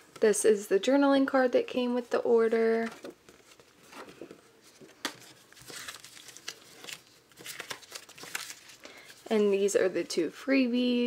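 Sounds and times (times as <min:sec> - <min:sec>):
paper and plastic crinkling: 0:02.7 - 0:10.0.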